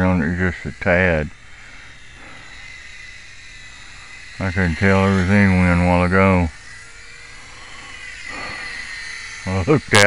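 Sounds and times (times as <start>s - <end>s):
model airplane motor whine: 0.0s - 10.0s
steady hiss: 0.0s - 10.0s.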